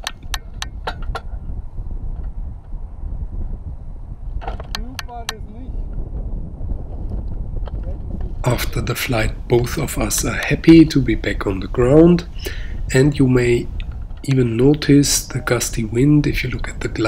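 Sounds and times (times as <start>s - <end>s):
wind buffeting microphone: 0.0s - 17.0s.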